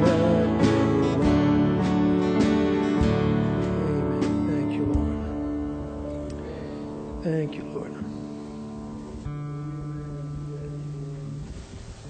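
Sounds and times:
guitar chord ringing: 0.0 - 11.6.

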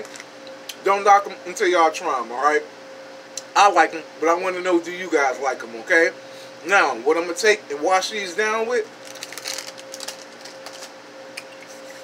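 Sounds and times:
electrical hum of drink coolers: 0.0 - 12.0.

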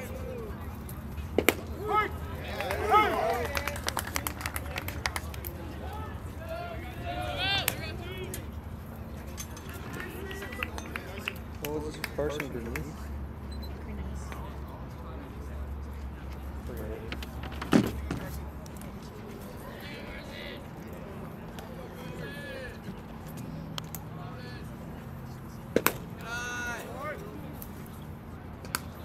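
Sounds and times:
distant shouts and chatter: 0.0 - 29.0
baseball smacks: 1.3 - 1.9, 25.7 - 26.3.

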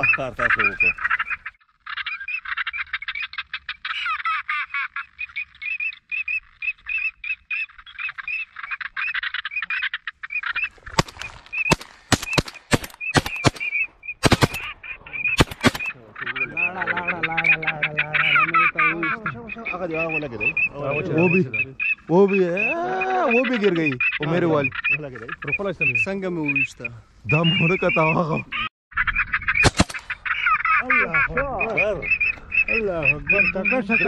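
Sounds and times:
ducks chattering: 0.0 - 34.0
shotgun shots: 10.9 - 14.8, 15.4 - 15.9, 29.6 - 30.2.

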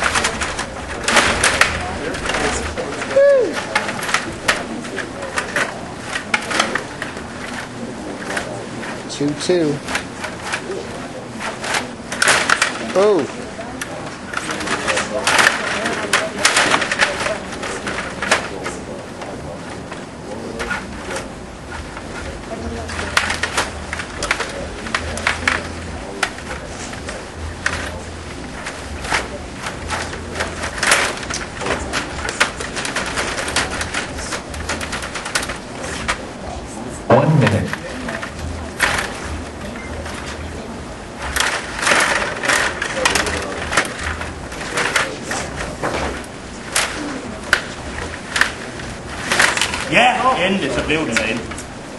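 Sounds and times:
table hockey game clattering: 0.0 - 8.6, 9.3 - 18.8, 20.6 - 36.3, 37.1 - 51.7.

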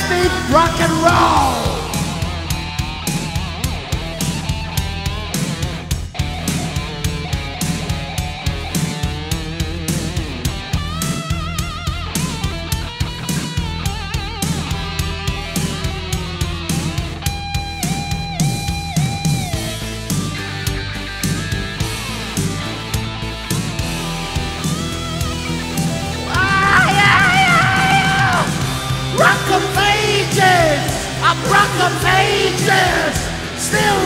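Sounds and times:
bass guitar: 0.0 - 34.0
drum beat: 0.4 - 16.9, 26.2 - 34.0
electric guitar solo: 25.3 - 29.8.

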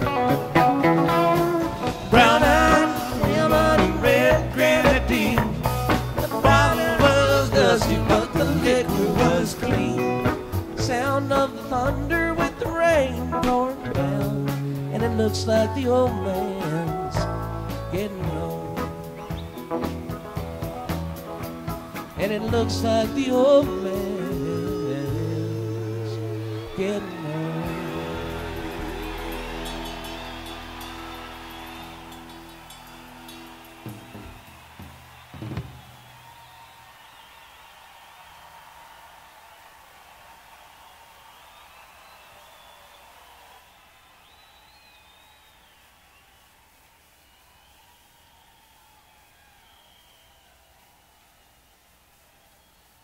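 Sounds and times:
rock band held chord: 0.0 - 15.2, 16.3 - 36.4.

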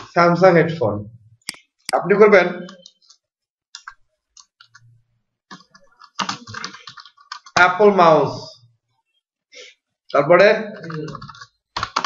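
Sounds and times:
person speaking: 0.0 - 3.1, 10.1 - 11.5
computer keyboard keystrokes: 5.5 - 7.6, 10.8 - 12.0.

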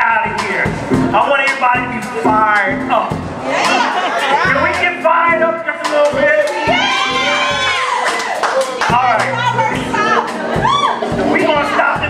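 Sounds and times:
drum kit beat: 0.0 - 12.0.

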